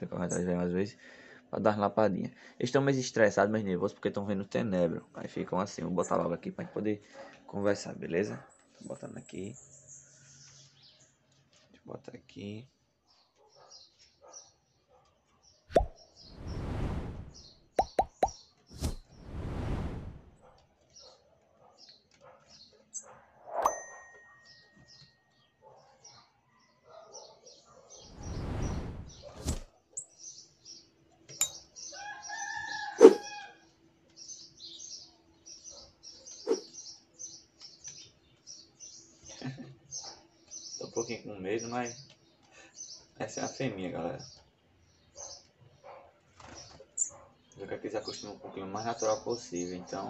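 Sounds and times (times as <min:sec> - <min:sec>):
birds chirping rapidly: 0:00.0 - 0:50.0
rushing noise bursts: 0:18.8 - 0:20.4.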